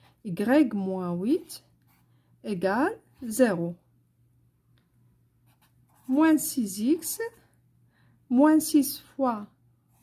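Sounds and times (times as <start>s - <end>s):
pen writing on paper: 5.5s - 6.3s.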